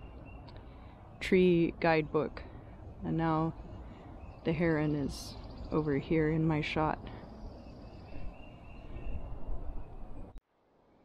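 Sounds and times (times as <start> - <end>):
low outdoor rumble: 0.0 - 10.4.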